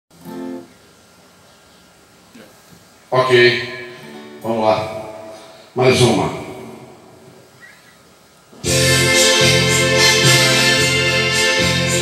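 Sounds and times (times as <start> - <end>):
acoustic guitar chord: 8.6 - 12.0.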